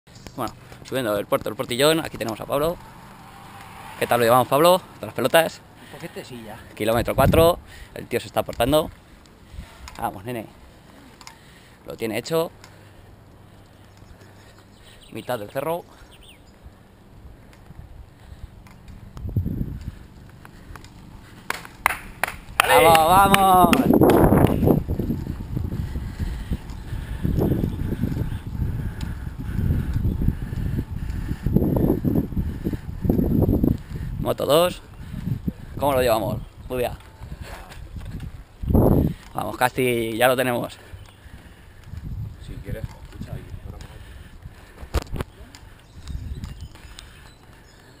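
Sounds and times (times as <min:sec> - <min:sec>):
road rumble: 0:00.1 - 0:48.0
wind buffeting microphone: 0:01.2 - 0:10.3, 0:16.2 - 0:48.0.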